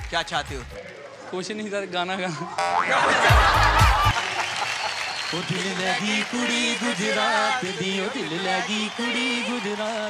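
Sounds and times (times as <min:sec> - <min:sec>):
audience applauding: 0:03.1 - 0:10.0.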